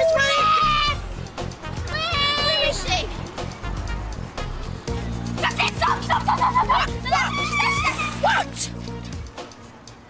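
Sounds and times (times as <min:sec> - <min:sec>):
background music: 0:00.0 - 0:10.0
high-pitched yelps: 0:06.0 - 0:08.6.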